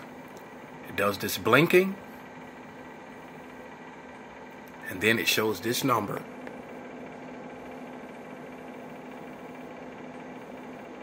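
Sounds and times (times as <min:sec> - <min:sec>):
computer fan hum: 0:00.0 - 0:11.0
faint constant tones: 0:00.0 - 0:11.0.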